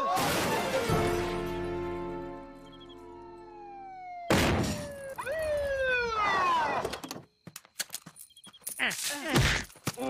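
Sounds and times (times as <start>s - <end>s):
police siren wailing: 2.7s - 7.0s.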